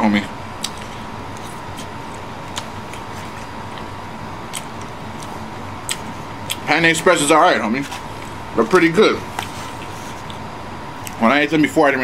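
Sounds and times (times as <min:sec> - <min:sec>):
faint hum: 0:00.0 - 0:12.0
man chewing noodles: 0:00.6 - 0:06.7, 0:09.2 - 0:11.2.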